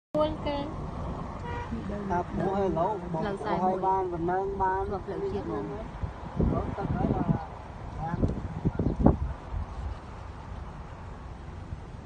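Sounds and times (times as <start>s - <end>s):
steady low background rumble: 0.2s - 12.0s.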